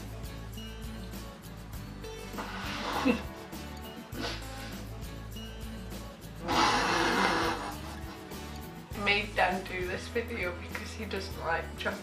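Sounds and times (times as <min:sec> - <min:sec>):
quiet background music: 0:00.0 - 0:12.0
woman's stifled laugh: 0:02.9 - 0:03.3.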